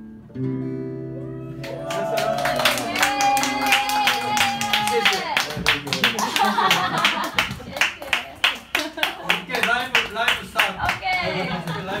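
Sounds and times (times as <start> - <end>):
audience clapping: 1.6 - 12.0
people talking: 9.3 - 12.0.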